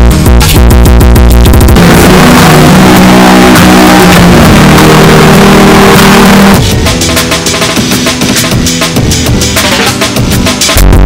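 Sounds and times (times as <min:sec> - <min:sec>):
distorted electronic dance music: 0:00.0 - 0:11.0
drums: 0:00.0 - 0:11.0.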